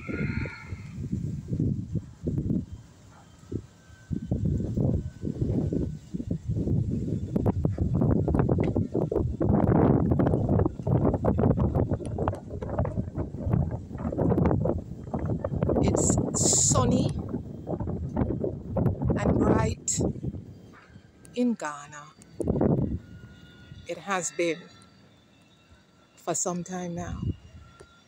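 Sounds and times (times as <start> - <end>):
wind buffeting microphone: 0.0 - 24.5, 27.0 - 28.0.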